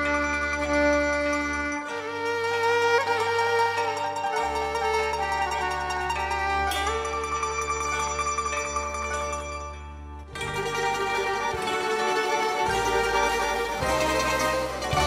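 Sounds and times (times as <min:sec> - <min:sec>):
band playing with plucked strings: 0:00.0 - 0:15.0.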